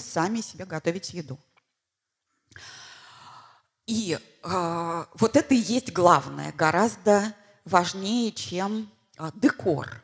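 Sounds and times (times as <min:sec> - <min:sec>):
woman speaking: 0:00.0 - 0:01.4, 0:03.9 - 0:10.0
woman breathing in: 0:02.5 - 0:03.8.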